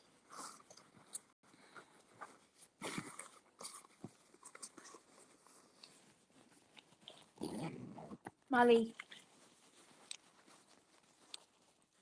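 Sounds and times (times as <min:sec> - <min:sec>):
dog sniffing and snuffling: 0:00.2 - 0:08.2, 0:09.0 - 0:12.0.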